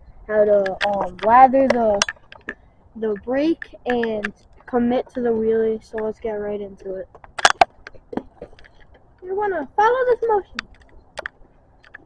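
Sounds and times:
sharp clicks and knocks: 0.4 - 6.2, 6.8 - 9.3, 10.1 - 12.0.

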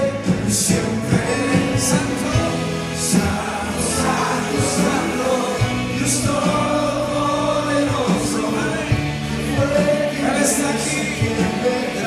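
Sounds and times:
band drum beats: 0.0 - 12.0
guitar: 0.0 - 12.0
many voices singing together: 0.0 - 12.0
men singing into microphones: 0.0 - 12.0.

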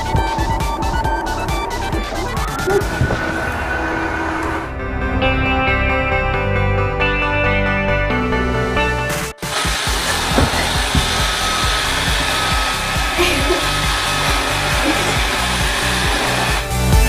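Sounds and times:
music with beat: 0.0 - 3.4, 5.6 - 17.0
robot vacuum whirring: 9.4 - 16.9.

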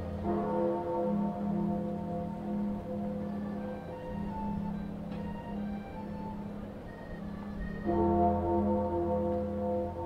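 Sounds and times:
bells ringing: 0.0 - 10.0.

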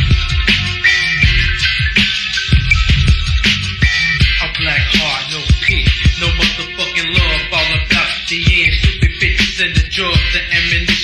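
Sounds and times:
dark rap beat: 0.0 - 11.0
man rapping: 4.2 - 11.0.

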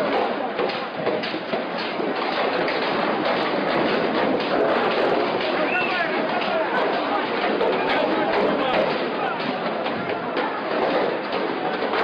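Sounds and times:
large crowd din: 0.0 - 12.0.

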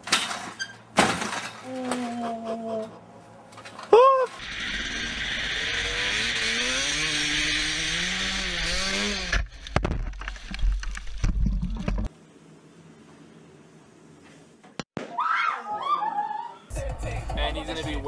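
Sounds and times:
person yelling: 3.9 - 4.3
dirt bike engine revving: 4.4 - 9.5.

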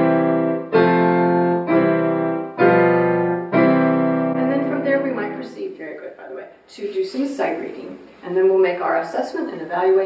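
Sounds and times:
digital piano chords: 0.0 - 6.1.

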